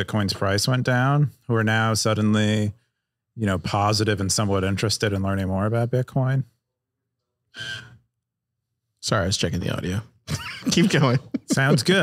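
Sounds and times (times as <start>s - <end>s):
person breathing: 7.5s - 8.0s.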